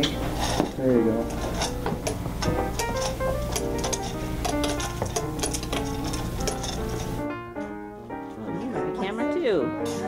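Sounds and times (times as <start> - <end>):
background music: 0.0 - 10.0
muzzle clinking metal bowl: 1.3 - 7.2.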